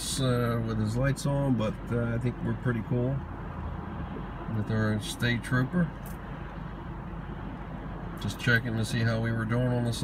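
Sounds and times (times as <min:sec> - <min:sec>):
passing highway traffic: 0:00.0 - 0:10.0.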